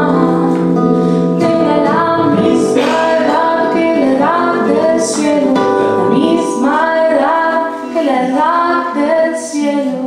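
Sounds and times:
acoustic guitar: 0:00.0 - 0:10.0
woman singing: 0:00.0 - 0:10.0.

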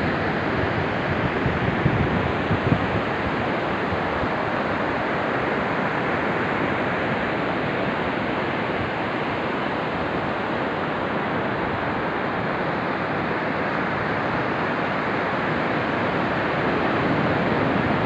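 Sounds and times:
wind buffeting microphone: 0:00.0 - 0:09.2
ocean surf breaking: 0:00.0 - 0:18.0.

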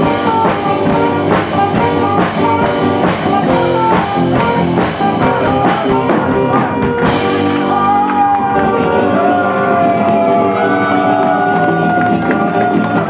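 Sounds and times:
rock band sustained chord: 0:00.0 - 0:12.9.

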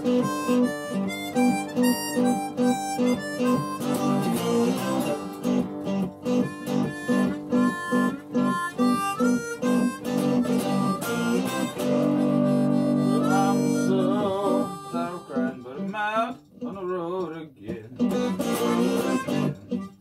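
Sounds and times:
blues harmonica solo: 0:00.0 - 0:15.9, 0:18.0 - 0:20.0
rhythmic guitar accompaniment: 0:00.0 - 0:20.0.

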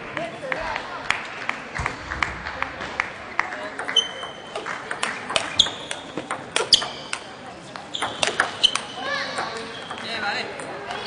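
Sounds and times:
table tennis ball clicks: 0:03.8 - 0:10.8
shoe squeak on court floor: 0:03.9 - 0:04.6, 0:05.4 - 0:07.2, 0:07.8 - 0:10.1.

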